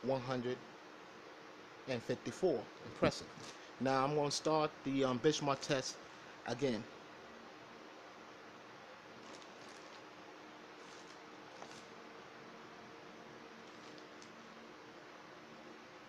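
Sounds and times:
faint steady hum: 0.0 - 16.0
faint rustles: 9.2 - 10.2, 10.8 - 12.0, 13.6 - 14.4.

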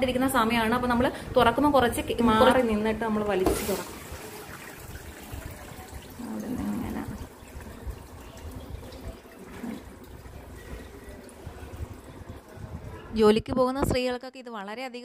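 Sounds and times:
water trickling and dripping: 3.3 - 13.2.

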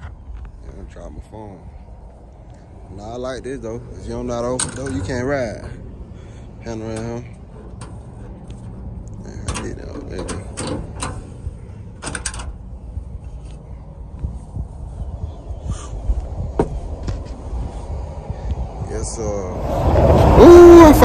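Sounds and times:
low rumble: 0.0 - 21.0
door latch clicks and creaks: 9.4 - 11.3, 12.0 - 12.6.

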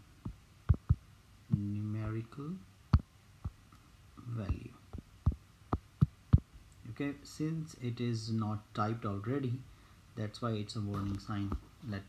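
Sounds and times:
fingertip tapping on glass screen: 0.7 - 2.2.

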